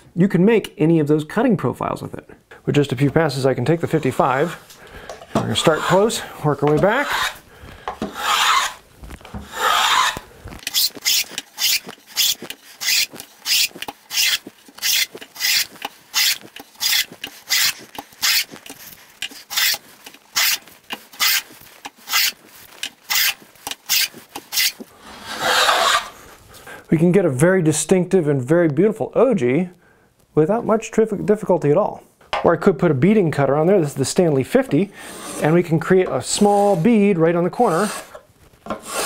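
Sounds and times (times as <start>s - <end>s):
plane shaving wood: 5.4s - 7.4s, 8.0s - 8.8s, 9.4s - 26.2s, 35.0s - 39.0s.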